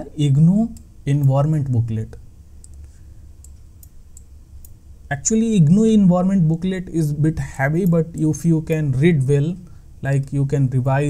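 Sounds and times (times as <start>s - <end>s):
low steady hum: 0.0s - 11.0s
computer mouse clicks: 2.6s - 4.8s.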